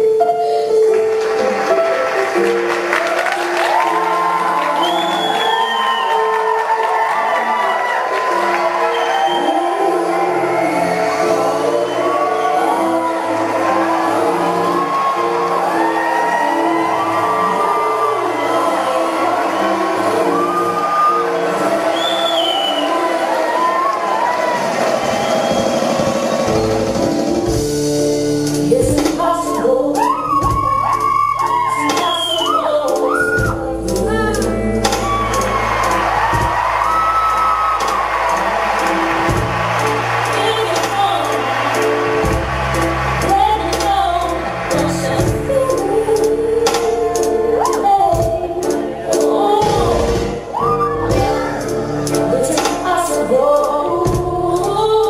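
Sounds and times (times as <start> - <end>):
backing music: 0.0 - 55.0
woman singing into a microphone: 9.1 - 14.8, 28.7 - 36.5, 40.3 - 41.5, 43.2 - 55.0
backing track with bass and percussion: 33.4 - 55.0
girl singing into a microphone: 50.9 - 55.0.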